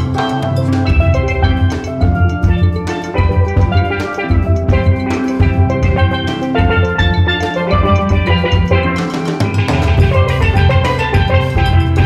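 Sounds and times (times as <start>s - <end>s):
bright melody notes: 0.0s - 12.0s
steady drum beat: 0.0s - 12.0s.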